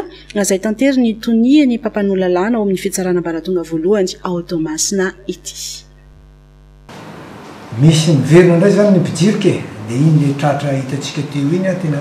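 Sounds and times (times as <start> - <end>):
electrical hum with tones: 0.0 - 12.0
man speaking: 7.7 - 12.0.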